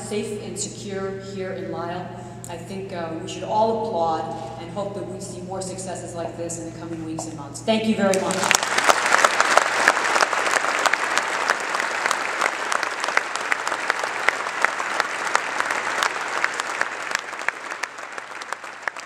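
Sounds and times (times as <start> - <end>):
audience applauding: 8.1 - 19.0.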